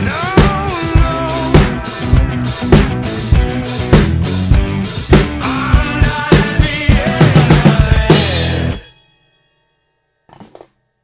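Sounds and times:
drum kit music: 0:00.0 - 0:09.0.

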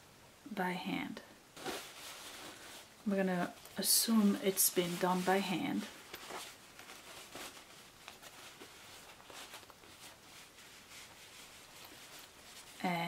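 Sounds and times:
fabric pouch rustling: 0:01.6 - 0:13.0.

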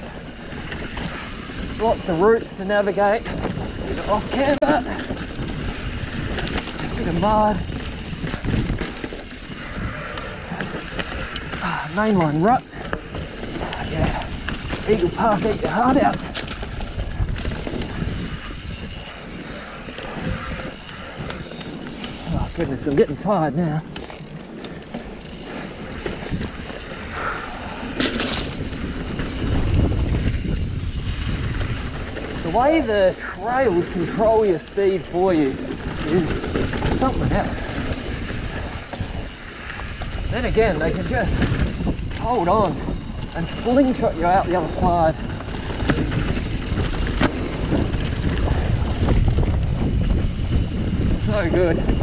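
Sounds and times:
bike rattle: 0:00.0 - 0:52.0
bike tyres rolling over dirt: 0:00.0 - 0:52.0
wind buffeting microphone: 0:00.0 - 0:52.0.

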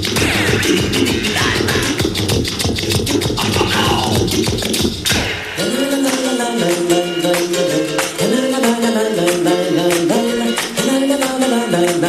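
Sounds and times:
music with fast steady beat: 0:00.0 - 0:12.0.

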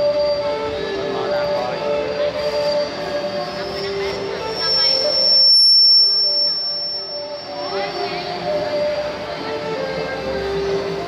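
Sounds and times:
high steady whistling tone: 0:00.0 - 0:11.0.

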